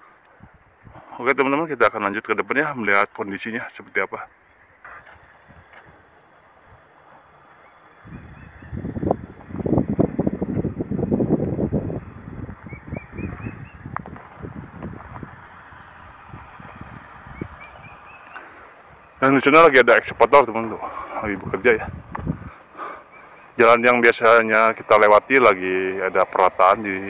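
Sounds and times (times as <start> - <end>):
high insect whine: 0.0 - 27.0
bird chirping: 12.6 - 13.9, 17.3 - 19.2, 23.1 - 23.6.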